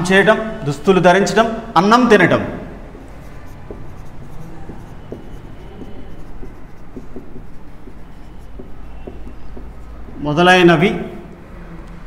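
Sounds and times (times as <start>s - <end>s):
marker writing on whiteboard: 3.0s - 11.5s.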